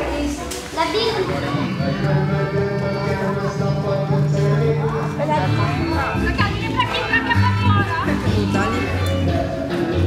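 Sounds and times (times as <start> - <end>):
children talking: 0.0 - 9.9.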